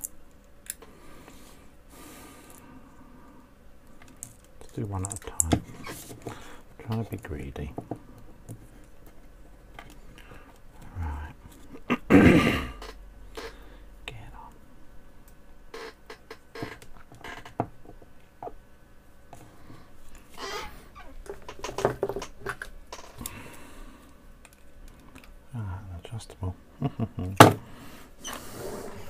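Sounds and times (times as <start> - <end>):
small parts clicking and tapping: 4.0 - 5.6
person muttering: 10.8 - 12.8.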